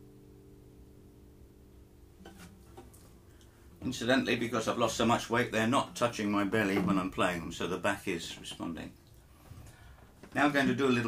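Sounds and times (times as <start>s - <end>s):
acoustic guitar notes ringing: 0.0s - 8.8s
guitar handling rubbing: 2.2s - 3.2s, 3.8s - 10.5s.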